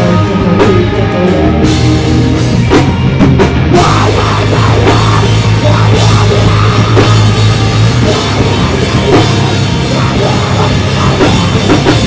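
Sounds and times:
metal band playing live: 0.0 - 12.0.

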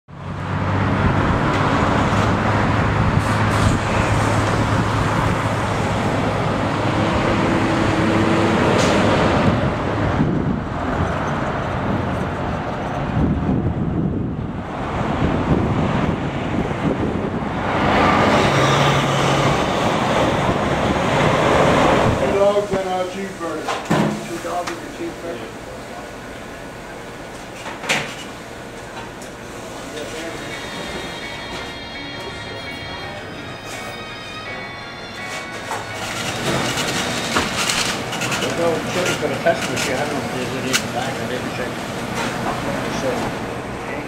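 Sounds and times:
highway traffic passing: 0.1 - 44.0.

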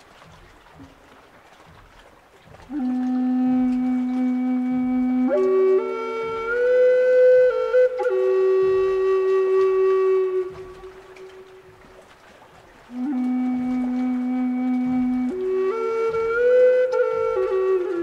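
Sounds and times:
flute playing slow melody: 0.1 - 18.0.

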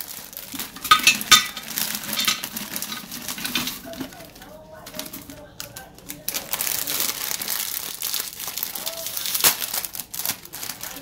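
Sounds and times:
plastic bag crinkling: 0.0 - 11.0.

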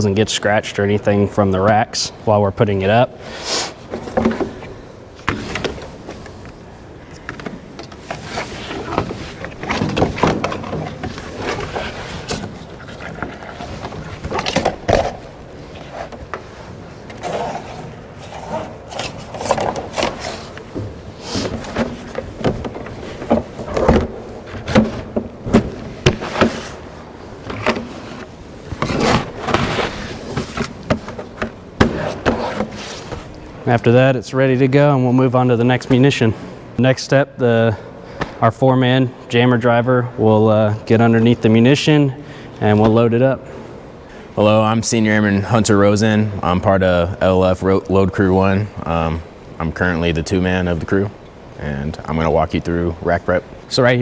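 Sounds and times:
fabric pad rustling and scraping: 8.0 - 9.6.

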